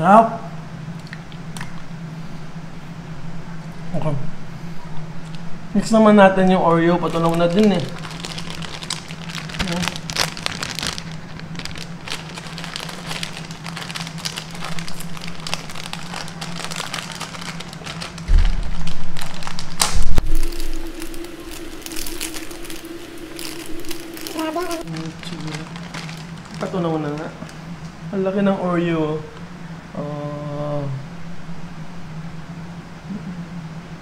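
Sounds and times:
steady background hum: 0.0 - 34.0
plastic wrapper crinkling: 6.9 - 27.6
low rumbling bump: 14.7 - 26.6.

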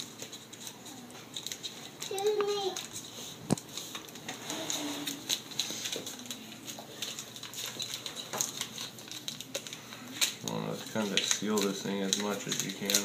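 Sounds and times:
tape crinkling: 0.0 - 13.0.

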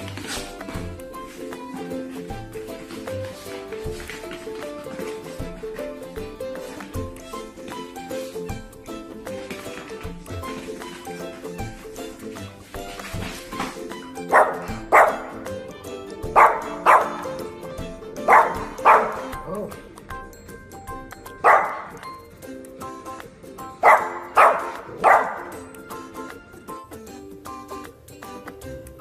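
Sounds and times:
background music: 0.0 - 29.0
puppy barking: 14.2 - 15.5, 16.2 - 17.5, 18.1 - 19.8, 21.3 - 22.0, 23.8 - 25.7.

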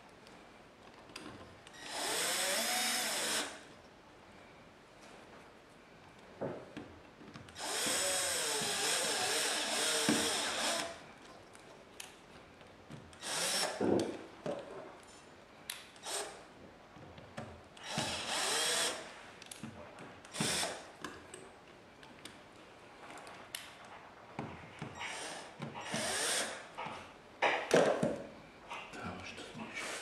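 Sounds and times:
cordless drill driving screws: 1.7 - 3.6, 7.5 - 11.0, 13.2 - 14.1, 16.0 - 16.4, 17.8 - 19.1, 20.3 - 20.9, 25.0 - 26.7.

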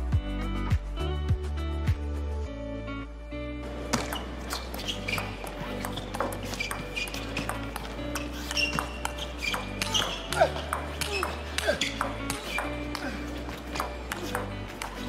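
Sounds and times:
background music: 0.0 - 15.0
table tennis ball clicking: 3.9 - 13.0, 13.8 - 15.0.

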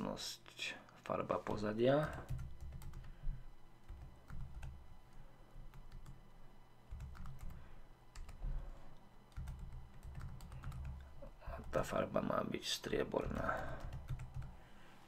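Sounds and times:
typing on computer keyboard: 2.0 - 3.2, 3.9 - 4.8, 5.7 - 6.2, 6.9 - 7.6, 8.2 - 8.4, 9.3 - 11.9, 13.2 - 14.6.

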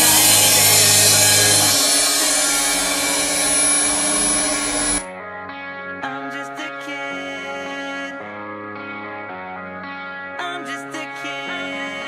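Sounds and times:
crash cymbals ringing: 0.0 - 5.1
low bass note: 0.0 - 5.1
distorted electric guitar chord: 0.0 - 6.0.

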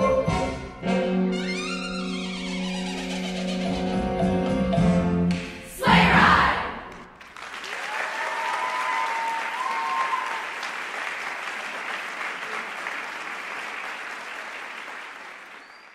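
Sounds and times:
audience applause: 6.9 - 15.9
short cheer: 7.7 - 10.7.

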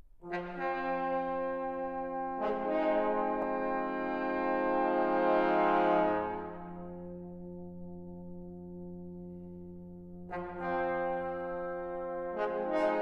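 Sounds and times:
brass ensemble holding chords: 0.2 - 13.0.

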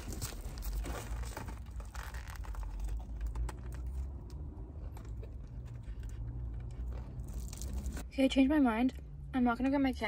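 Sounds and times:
sandwich wrapper crinkling: 0.0 - 4.1, 6.8 - 8.0
biting and chewing: 0.0 - 8.0.

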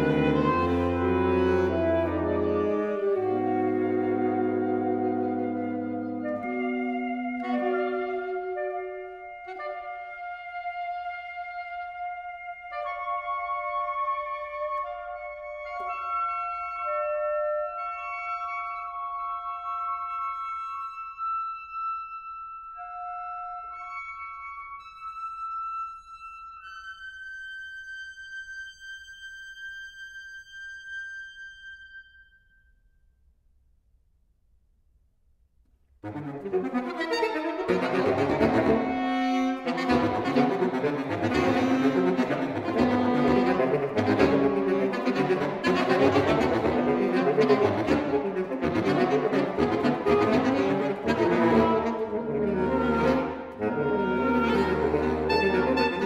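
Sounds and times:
saxophone quartet playing: 0.0 - 22.2, 36.0 - 56.0.

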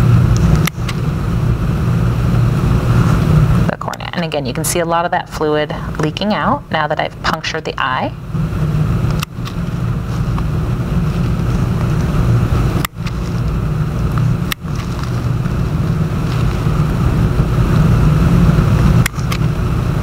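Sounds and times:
low background rumble: 0.0 - 20.0.

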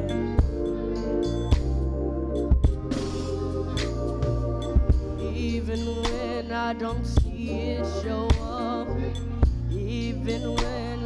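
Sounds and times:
bass: 0.0 - 11.0
keyboard chords: 0.0 - 11.0.

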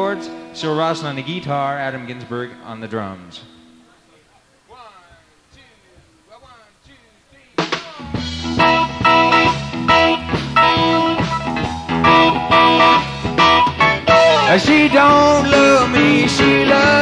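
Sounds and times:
live blues-rock band playing: 0.0 - 2.6, 7.6 - 17.0
man's voice: 0.0 - 8.6, 14.1 - 17.0.

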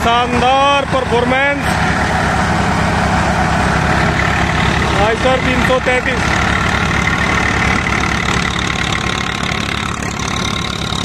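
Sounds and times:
diesel engine and thresher din: 0.0 - 11.0.

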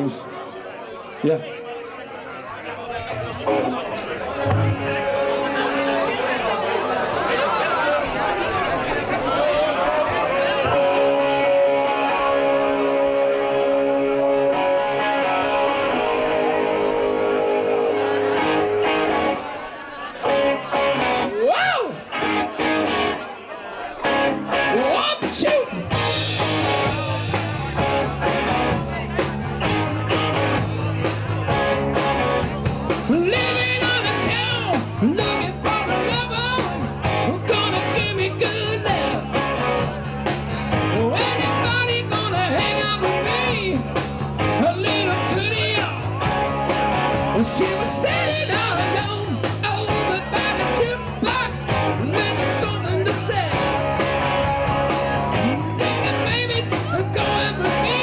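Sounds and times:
drums: 3.0 - 6.2, 8.0 - 19.5, 24.0 - 58.0
rock band playing: 3.0 - 7.3, 8.3 - 58.0
electric guitar chords: 3.1 - 6.5, 10.2 - 19.6, 20.2 - 23.3, 24.0 - 58.0
man singing: 33.0 - 39.3, 40.8 - 46.1, 47.2 - 54.0, 55.4 - 58.0.

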